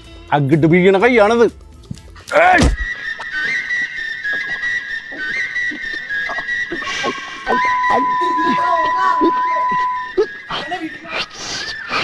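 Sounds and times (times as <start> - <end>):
people crying out and yelping: 2.2 - 12.0.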